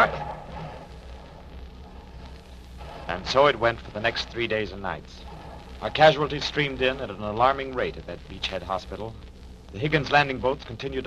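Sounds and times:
distant gunfire and explosions: 0.0s - 8.0s
low hum: 0.0s - 11.0s
recording hiss: 0.0s - 11.0s.

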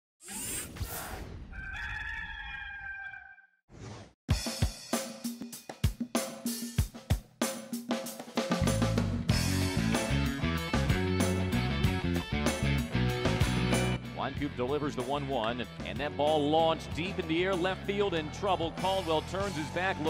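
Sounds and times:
rooster crowing: 1.5s - 3.5s
drum and cymbal hits: 4.3s - 10.3s
bass line: 8.6s - 20.0s.

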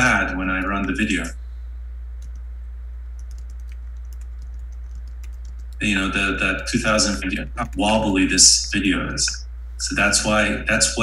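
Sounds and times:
low electrical hum: 0.0s - 11.0s
computer clicks: 0.5s - 1.0s, 2.2s - 2.5s, 3.2s - 5.8s, 7.5s - 8.2s.

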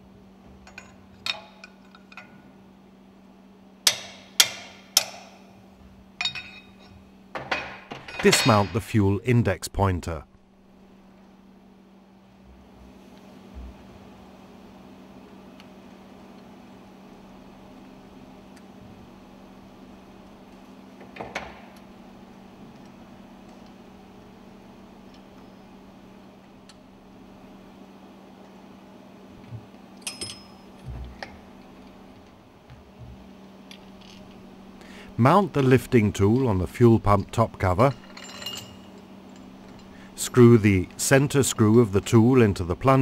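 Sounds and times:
faint steady hum: 0.0s - 43.0s
small metallic clicks and clinks: 30.0s - 31.3s.

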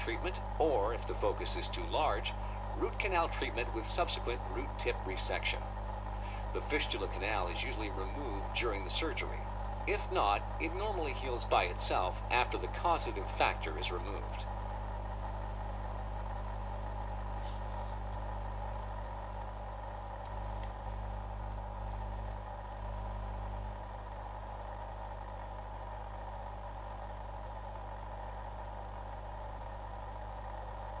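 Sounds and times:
electrical hum with hiss: 0.0s - 31.0s.

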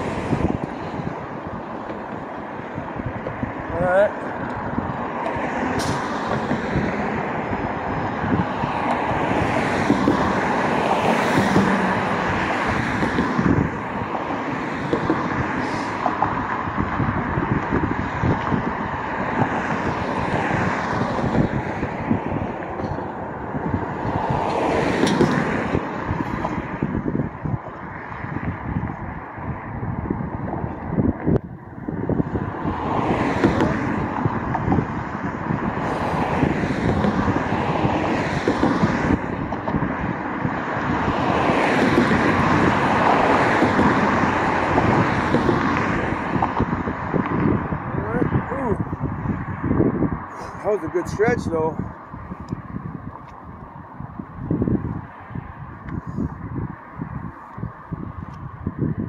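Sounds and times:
cars passing: 0.0s - 59.0s
wind buffeting microphone: 0.0s - 59.0s.

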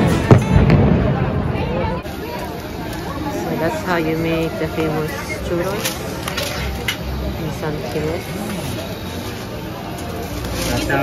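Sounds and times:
fireworks exploding: 0.0s - 9.0s
voices: 0.0s - 11.0s.

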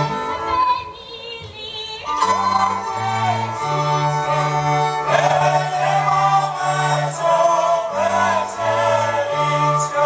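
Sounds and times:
group singing in harmony: 2.1s - 10.0s.

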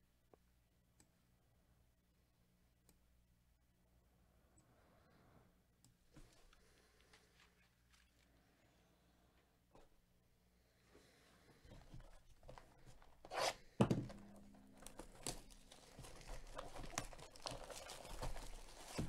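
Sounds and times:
plastic wrap crinkling: 6.3s - 8.4s, 11.6s - 19.0s
plastic wrap tearing: 11.8s - 19.0s.

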